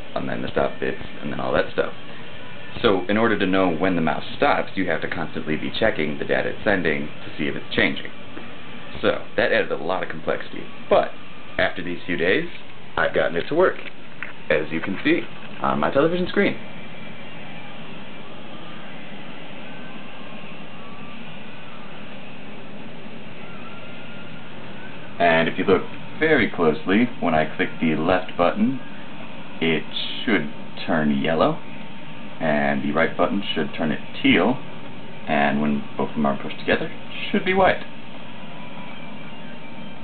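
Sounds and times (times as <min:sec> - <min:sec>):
faint steady tone: 0:00.0 - 0:40.0
steady background hiss: 0:00.0 - 0:40.0
faint thin high tones: 0:16.0 - 0:26.6.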